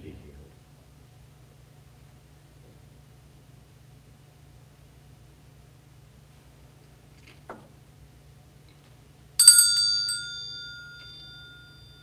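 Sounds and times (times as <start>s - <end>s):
small metal bell ringing: 9.4s - 12.0s.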